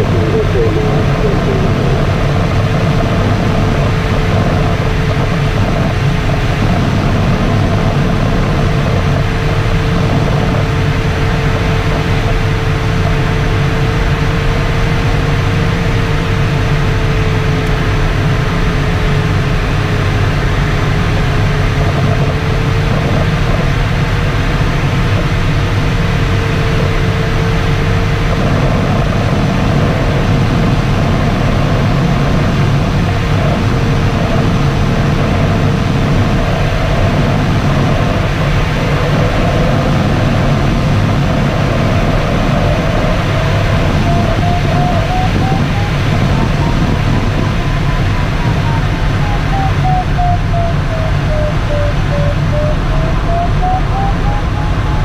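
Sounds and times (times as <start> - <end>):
electronic variometer tone: 0.0 - 55.0
rush of airflow: 0.0 - 55.0.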